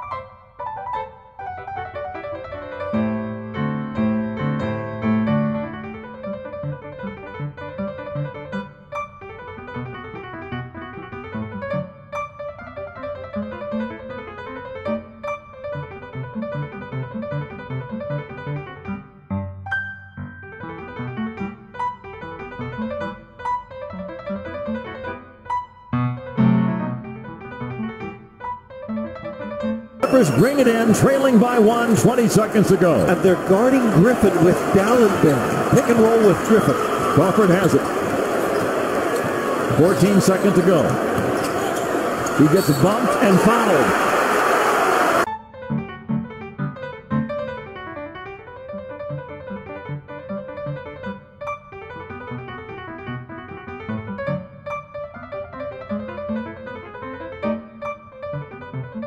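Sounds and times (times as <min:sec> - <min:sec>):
piano playing sustained chords: 0:00.0 - 0:41.0.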